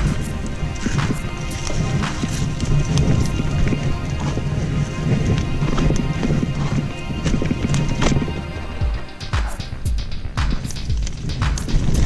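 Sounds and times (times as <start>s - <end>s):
background music: 0.0s - 12.0s
bike tyres rumbling on dirt: 0.0s - 12.0s
bike knocking and rattling: 8.9s - 12.0s.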